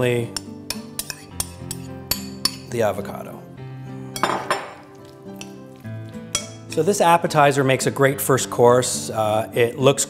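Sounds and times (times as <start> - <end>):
background music: 0.0 - 10.0
spoon scraping ceramic bowl: 0.4 - 2.7.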